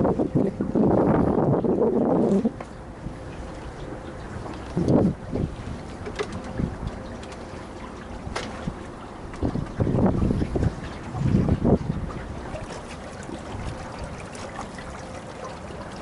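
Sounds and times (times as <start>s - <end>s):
wind buffeting microphone: 0.0s - 14.9s
water washing along boat hull: 0.0s - 16.0s.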